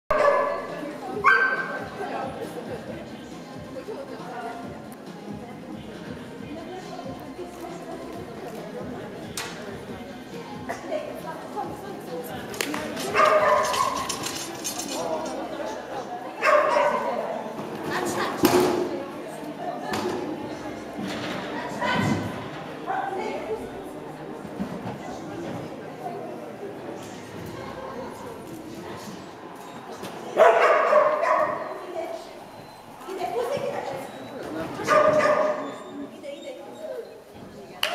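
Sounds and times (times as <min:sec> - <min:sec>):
dog barking: 0:00.1 - 0:01.7, 0:13.1 - 0:14.0, 0:16.4 - 0:17.1, 0:30.4 - 0:31.7, 0:34.8 - 0:35.8.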